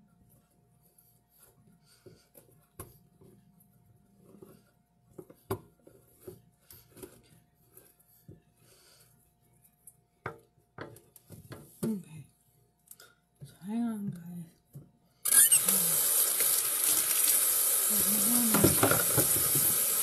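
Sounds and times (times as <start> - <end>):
kitchen items knocking and scraping: 18.5 - 19.8.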